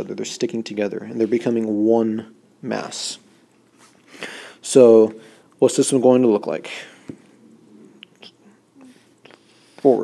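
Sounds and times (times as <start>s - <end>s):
faint breathing: 4.0s - 5.6s, 6.7s - 10.0s.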